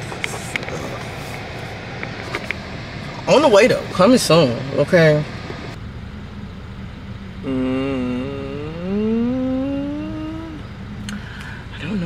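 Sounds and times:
low hum of car interior: 0.0 - 12.0.

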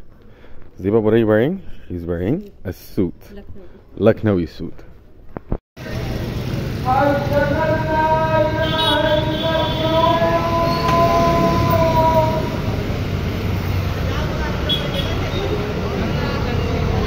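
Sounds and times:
scooters and cars passing: 5.8 - 17.0
person singing long notes: 7.2 - 12.7.

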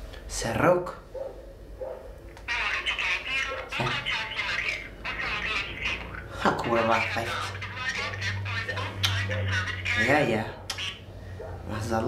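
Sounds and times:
high-pitched voice from phone speaker: 2.4 - 11.0.

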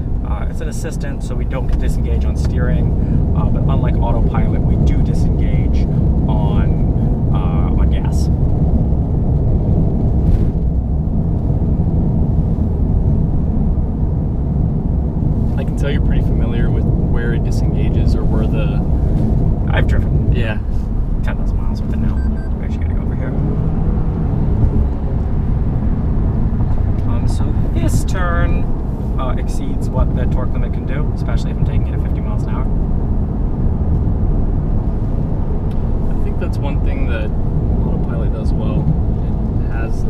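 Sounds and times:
road and tyre rumble in car: 0.0 - 40.0.

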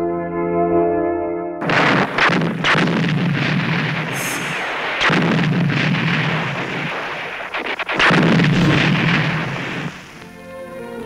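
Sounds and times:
rapid gunfire: 1.6 - 10.4
artillery blasts: 1.6 - 10.5.

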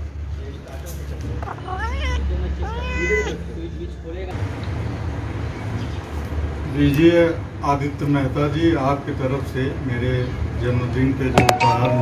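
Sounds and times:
cat meowing: 1.4 - 3.5.

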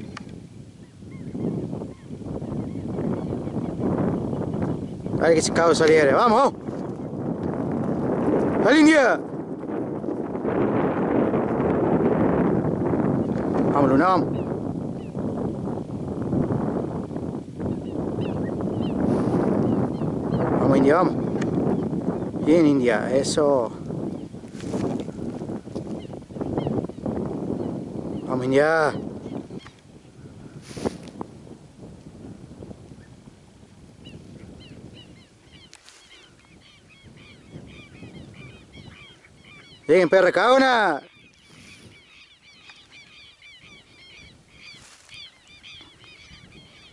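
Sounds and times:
birds calling harshly: 0.0 - 10.0, 13.1 - 15.3, 17.6 - 29.9, 34.0 - 46.9
wind rumbling on microphone: 0.0 - 46.9.

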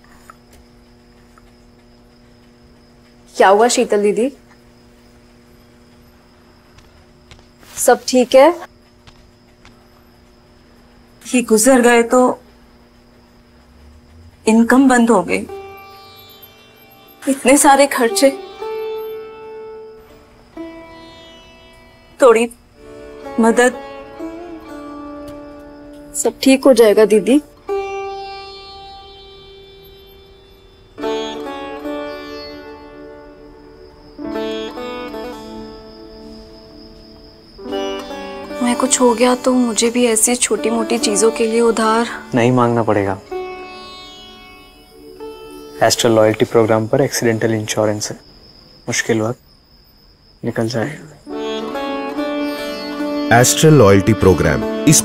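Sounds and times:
cricket chirping: 0.0 - 55.0.

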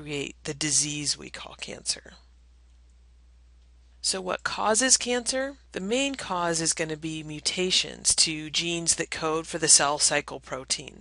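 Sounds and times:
person speaking: 0.0 - 2.3, 4.0 - 11.0
faint low hum with hiss: 0.0 - 11.0.

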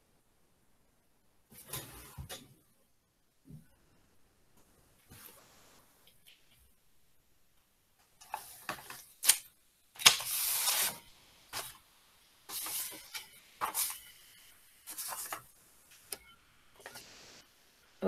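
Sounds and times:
paper rustling and scissors cutting: 8.2 - 11.0.

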